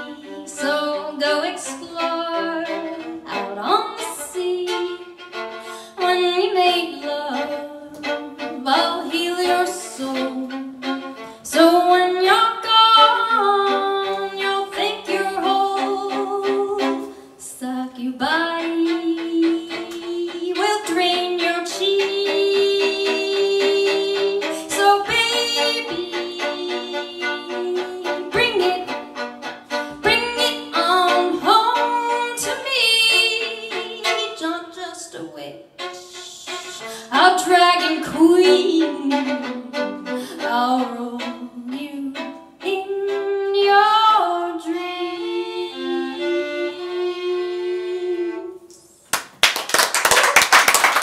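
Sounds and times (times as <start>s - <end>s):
solo violin playing: 0.0s - 48.9s
audience clapping: 49.1s - 51.0s.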